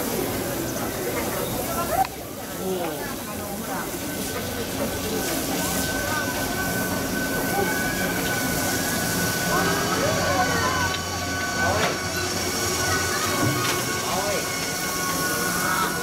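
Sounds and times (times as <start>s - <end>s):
distant voices: 0.0s - 16.0s.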